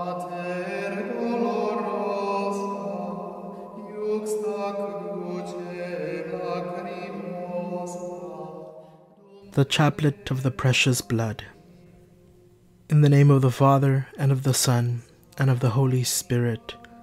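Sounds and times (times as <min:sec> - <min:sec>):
voice chanting sustained notes: 0:00.0 - 0:17.0.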